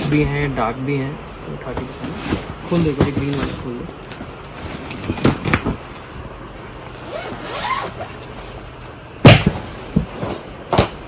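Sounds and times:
zipper on plastic bag: 7.0 - 8.2.

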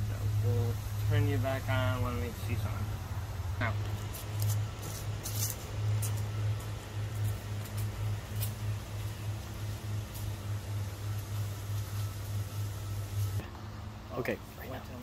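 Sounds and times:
low pulsing hum: 0.0 - 14.1
rustles: 3.6 - 13.6
footsteps through grass and leaves: 3.7 - 13.4.

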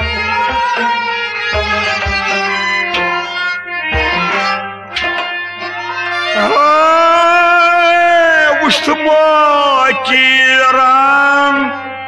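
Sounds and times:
plucked rabab phrases: 0.0 - 12.0
man singing held note: 6.4 - 11.8.

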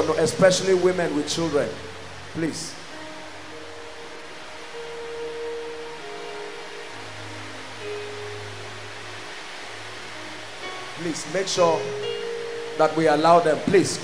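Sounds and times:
sustained keyboard chords: 0.0 - 14.0.

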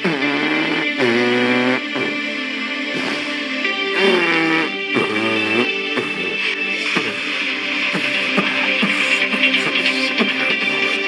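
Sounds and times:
radio music with gliding melody: 0.0 - 11.0.

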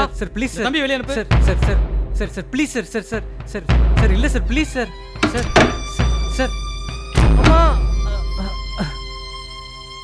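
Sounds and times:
body hitting floor: 5.2 - 5.9.

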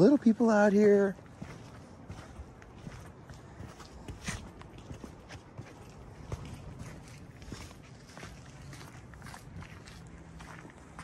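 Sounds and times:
footsteps on dry leaves: 0.0 - 11.0.

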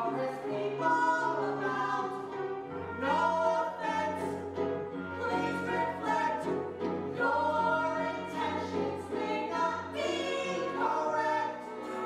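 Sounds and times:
musical theatre singing: 0.0 - 12.0
pit orchestra: 0.0 - 12.0.

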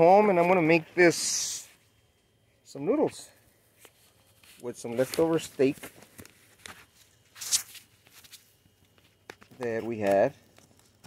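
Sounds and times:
clothing rustling against camera: 3.7 - 9.8.

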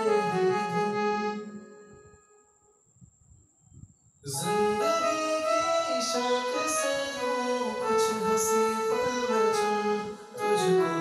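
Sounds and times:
keyboard notes: 0.0 - 2.9, 4.3 - 11.0.

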